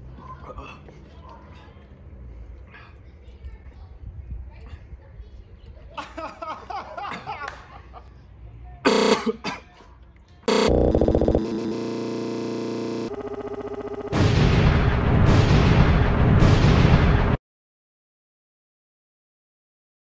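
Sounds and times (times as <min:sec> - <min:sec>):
blaring horn blast: 0:08.9 - 0:09.2, 0:10.5 - 0:13.1
loud explosion with rumble: 0:14.1 - 0:17.4.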